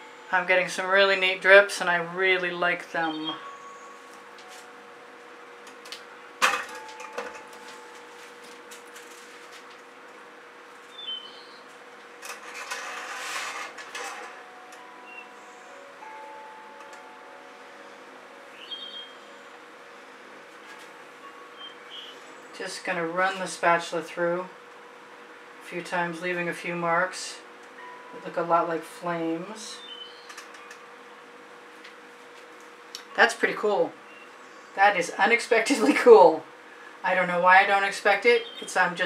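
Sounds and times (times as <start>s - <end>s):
steady hum: 0.0s - 39.0s
scraping rustle: 12.2s - 14.4s.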